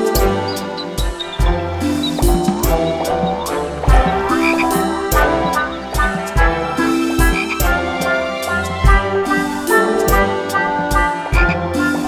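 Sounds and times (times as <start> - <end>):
children's music with drum beat: 0.0 - 12.0
cartoon frog croak: 2.2 - 6.2.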